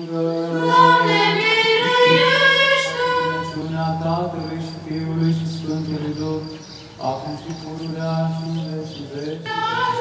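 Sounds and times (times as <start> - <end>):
choir singing unaccompanied chant: 0.0 - 10.0.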